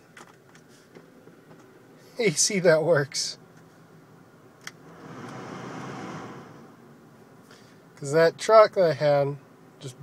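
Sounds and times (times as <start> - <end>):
heater blower air rushing: 4.8 - 6.9.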